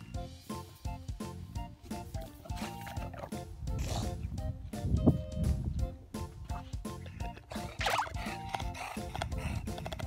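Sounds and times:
background music: 0.0 - 10.0
dog breathing and grunting: 6.5 - 10.0.

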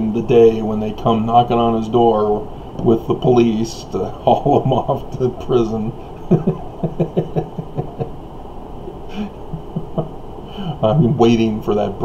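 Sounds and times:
man chuckling: 6.2 - 8.2, 8.9 - 11.3.

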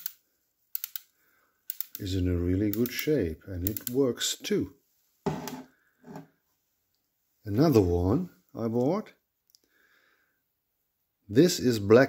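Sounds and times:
ratchet screwdriver clicking: 0.8 - 1.1, 1.7 - 2.0.

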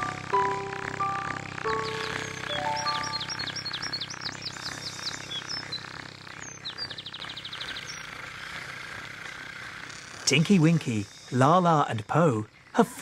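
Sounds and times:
music melody: 0.0 - 4.4
bird trill: 0.0 - 8.4
songbirds chirping: 0.0 - 13.0.

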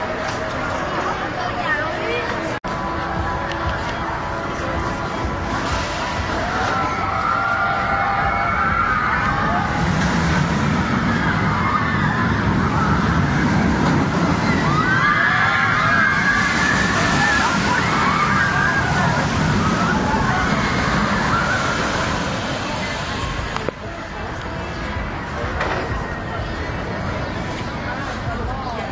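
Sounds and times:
roller coaster wheels rumbling on rails: 0.0 - 28.9
riders screaming: 10.8 - 22.4.

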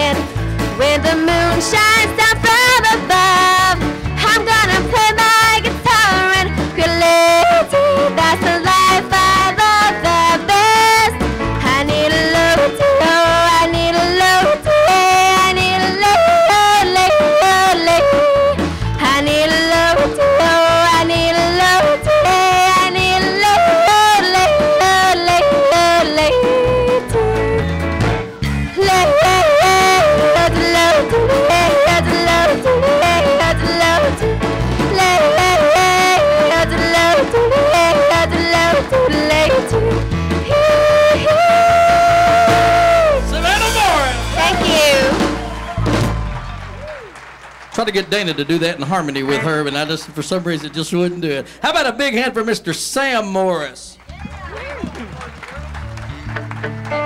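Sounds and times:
country-style instrumental music: 0.0 - 57.0
woman yodeling: 11.8 - 27.6, 28.8 - 34.2, 35.0 - 43.3.

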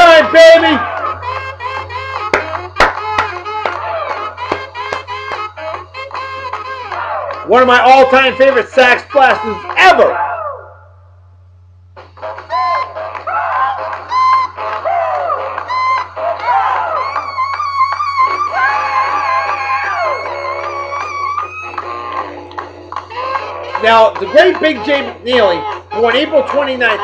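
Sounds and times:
rhythm and blues through speakers: 0.0 - 7.5, 12.0 - 27.0
steady low hum: 0.0 - 26.1.

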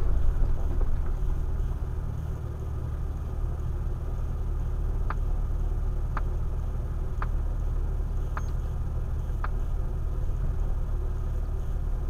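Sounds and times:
vehicle engine rumble from inside: 0.0 - 12.0.

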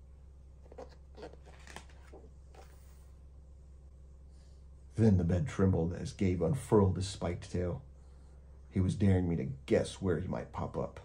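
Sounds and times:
steady low hum: 0.0 - 11.0
book page turning: 0.6 - 3.0.

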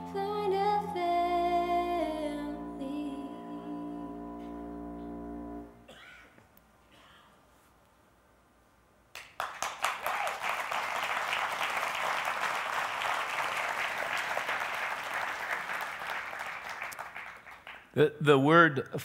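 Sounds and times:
congregation applauding: 9.2 - 18.0.

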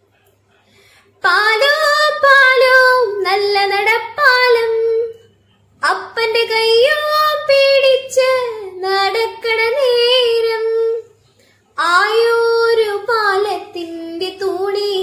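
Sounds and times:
woman singing unaccompanied: 1.2 - 5.2, 5.8 - 11.1, 11.8 - 15.0.

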